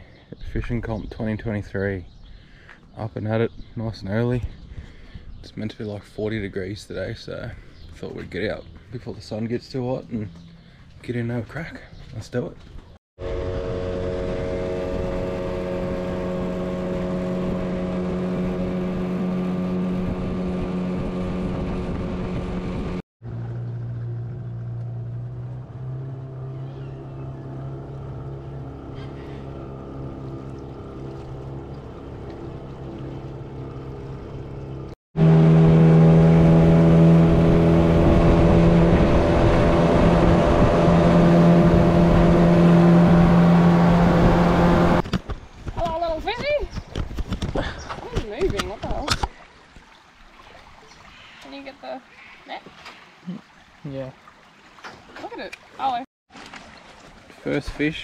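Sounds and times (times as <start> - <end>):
outboard motor running: 13.2 - 45.1.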